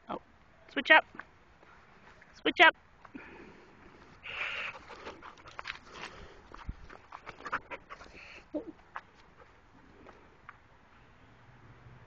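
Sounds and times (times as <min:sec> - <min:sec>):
paws scuffing on gravelly dirt: 0:04.0 - 0:08.3
small dog panting: 0:04.3 - 0:09.7.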